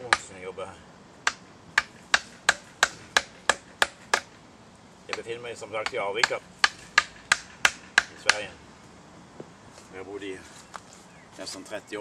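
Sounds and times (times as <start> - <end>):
hand tools striking wooden log: 0.0 - 0.3, 1.2 - 4.4, 5.1 - 8.5.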